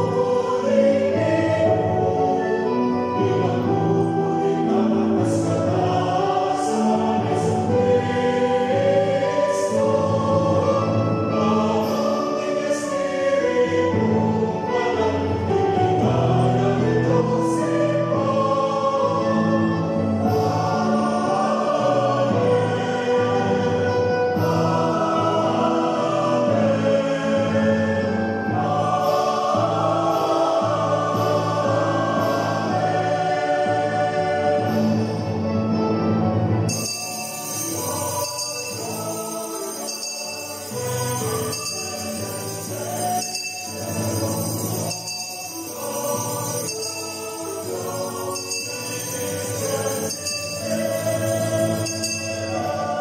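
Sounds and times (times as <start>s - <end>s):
choir singing a hymn: 0.0s - 53.0s
keyboard accompaniment: 0.0s - 53.0s.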